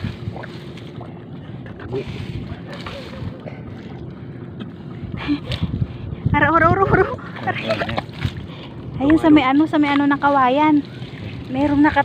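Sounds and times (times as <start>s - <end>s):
wading through shallow water: 0.0s - 12.0s
wind on microphone: 0.0s - 12.0s.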